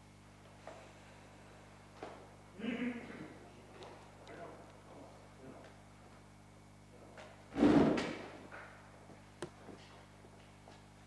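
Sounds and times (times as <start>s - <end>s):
loud thump with rustling: 7.5s - 8.4s.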